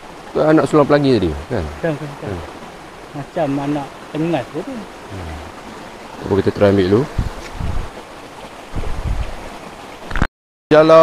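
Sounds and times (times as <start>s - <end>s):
stream water rushing: 0.0s - 11.0s
low wind rumble on microphone: 6.2s - 8.0s, 8.6s - 9.5s.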